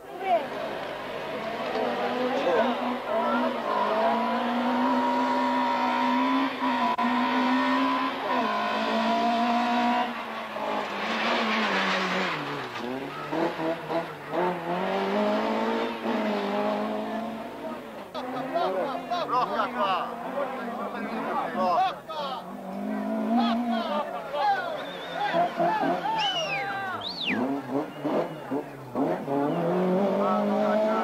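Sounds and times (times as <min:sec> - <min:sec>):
race car engine revving: 0:00.4 - 0:21.6, 0:24.9 - 0:31.0.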